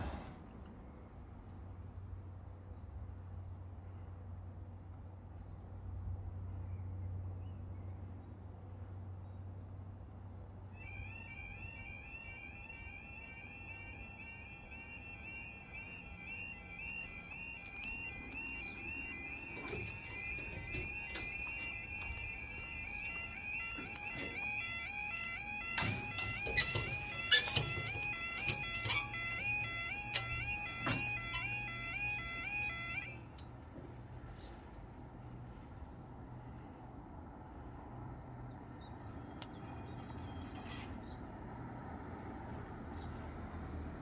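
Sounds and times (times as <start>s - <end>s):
warbling two-tone crossing alarm: 10.8s - 35.8s.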